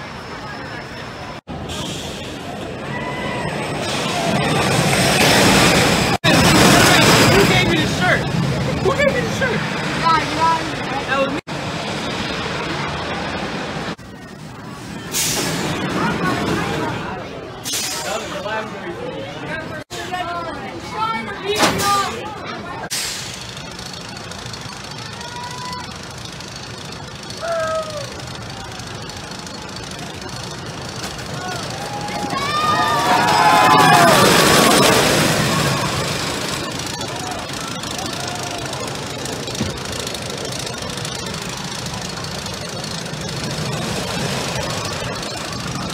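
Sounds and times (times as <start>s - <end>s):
people talking and calling: 0.0s - 45.9s
roller coaster rumbling on track: 0.0s - 45.9s
riders screaming: 2.8s - 5.6s, 24.8s - 26.3s, 27.1s - 29.4s, 31.2s - 39.4s.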